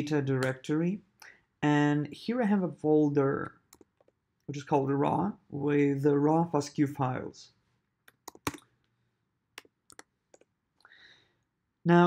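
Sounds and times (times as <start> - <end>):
keyboard key clicks: 8.1 - 8.7.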